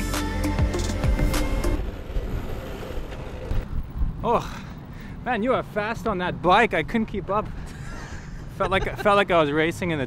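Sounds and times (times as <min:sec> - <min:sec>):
wind buffeting microphone: 0:01.8 - 0:05.0.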